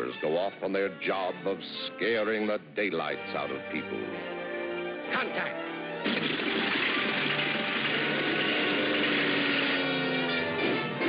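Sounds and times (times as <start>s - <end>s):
cartoon aircraft engines running: 6.2s - 11.0s.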